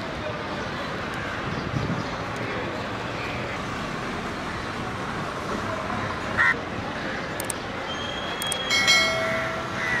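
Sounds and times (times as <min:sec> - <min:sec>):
busy bus stand background noise: 0:00.0 - 0:10.0
quick clicks: 0:07.4 - 0:07.6, 0:08.4 - 0:08.7
ringing multi-tone chime: 0:08.7 - 0:09.8.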